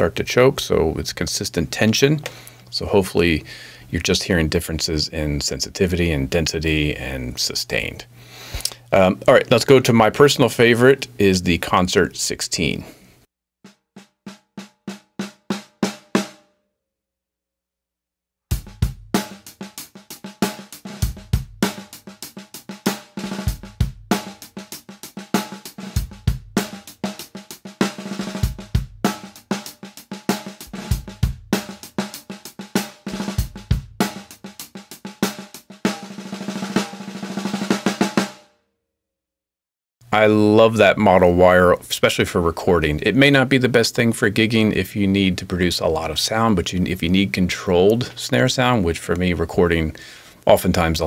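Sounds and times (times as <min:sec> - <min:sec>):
drum kit groove: 0:00.0 - 0:12.9, 0:18.5 - 0:38.4, 0:40.1 - 0:51.0
snare drum single strokes: 0:18.6 - 0:38.4.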